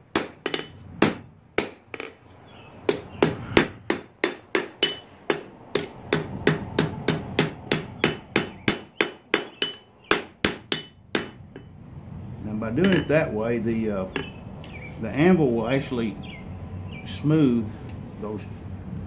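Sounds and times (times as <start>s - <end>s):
hammer striking hot steel on anvil: 0.2s - 2.1s, 2.9s - 11.7s, 12.8s - 13.1s.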